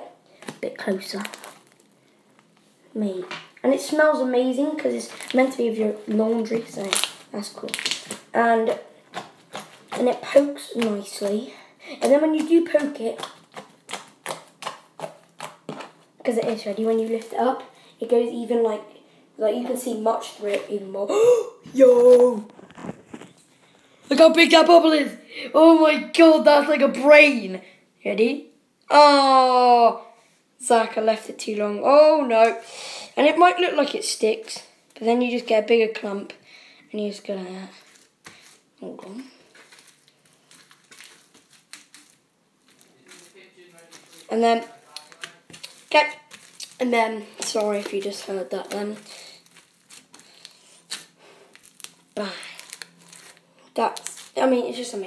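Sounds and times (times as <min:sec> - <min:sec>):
slime squishing and crackling: 0:00.4 - 0:02.6, 0:04.6 - 0:17.7, 0:22.1 - 0:23.5, 0:37.6 - 0:55.0
fingertips poking sticky slime: 0:12.0 - 0:16.0.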